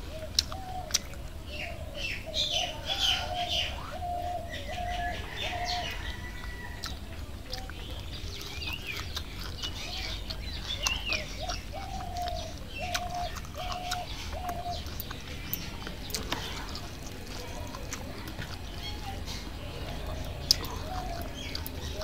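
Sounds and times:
birds chirping and twittering: 0.0 - 22.0.

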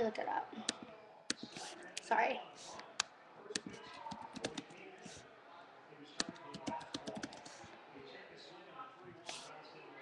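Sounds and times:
computer keyboard typing: 3.5 - 4.8, 6.2 - 7.6.

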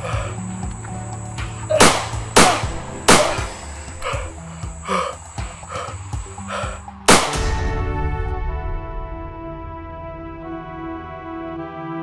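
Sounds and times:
man gasping: 0.0 - 0.4, 3.3 - 6.9
background music: 0.0 - 12.0
handgun shots: 1.7 - 3.7, 7.1 - 7.5.

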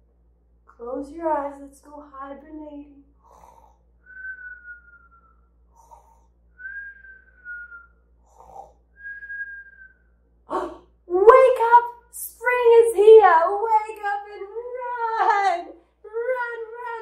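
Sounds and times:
sharp breath in: 3.2 - 3.8, 5.7 - 6.3, 8.2 - 8.8.

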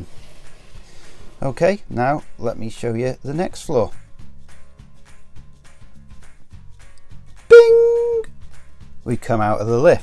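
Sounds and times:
quiet background music: 0.0 - 10.0
loud held tone: 7.5 - 8.2.

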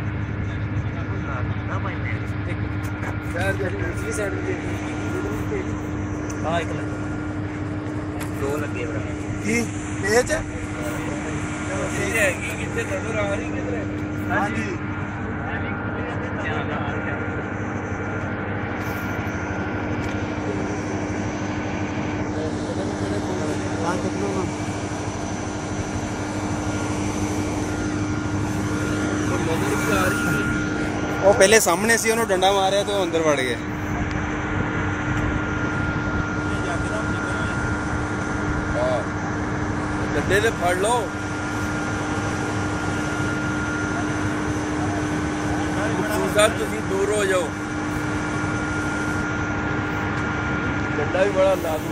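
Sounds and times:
generator engines droning: 0.0 - 51.9
steady mechanical whine: 0.0 - 51.9.

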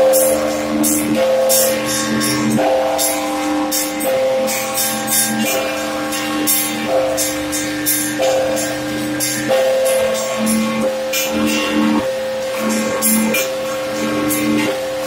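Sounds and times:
large bells ringing: 0.0 - 15.0
small bells chiming: 0.0 - 15.0.

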